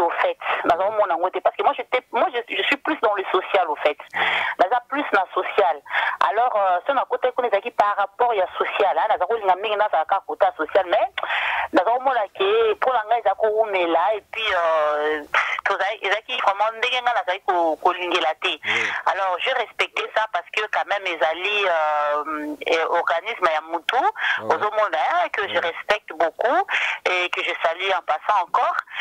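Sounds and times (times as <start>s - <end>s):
person talking over telephone: 0.0s - 29.0s.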